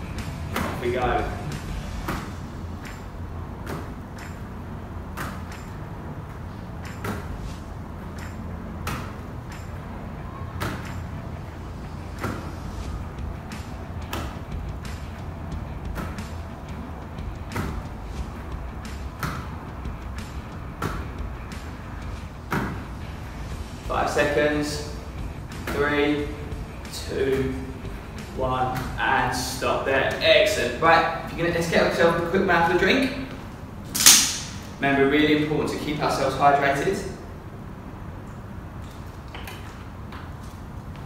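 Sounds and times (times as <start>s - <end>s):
ball slapping into hands: 3.6s - 4.4s, 8.1s - 9.6s, 13.5s - 15.0s, 15.9s - 16.4s, 17.4s - 17.9s, 18.8s - 21.2s, 33.9s - 34.7s
steady low rumble: 11.1s - 30.0s.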